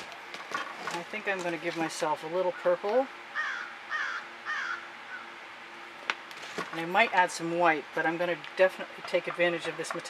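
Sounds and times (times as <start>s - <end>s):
crow cawing: 3.4s - 5.4s.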